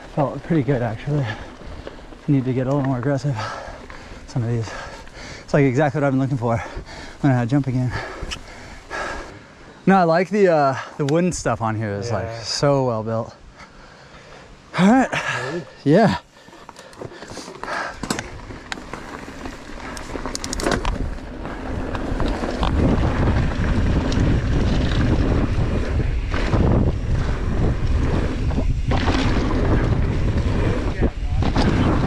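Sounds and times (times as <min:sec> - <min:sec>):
bike clicks and rattles: 0:00.0 - 0:09.2, 0:16.4 - 0:32.0
wind buffeting microphone: 0:17.7 - 0:32.0.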